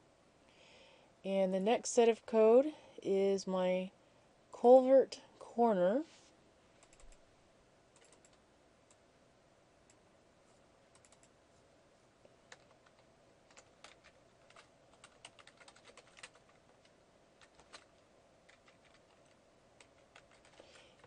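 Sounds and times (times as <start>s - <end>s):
faint steady hum: 0.0s - 21.0s
computer keyboard typing: 6.8s - 7.2s, 8.0s - 9.0s, 10.9s - 11.4s, 12.5s - 21.0s.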